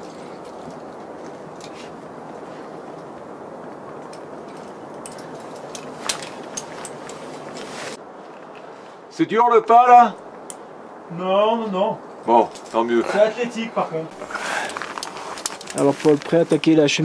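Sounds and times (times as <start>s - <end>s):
climbing hardware clinking: 4.0s - 7.7s.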